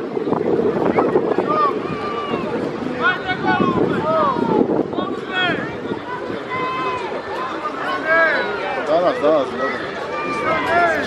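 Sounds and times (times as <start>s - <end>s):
crowd talking: 0.0s - 11.0s
wind buffeting microphone: 0.0s - 11.0s
voices calling out: 0.7s - 11.0s.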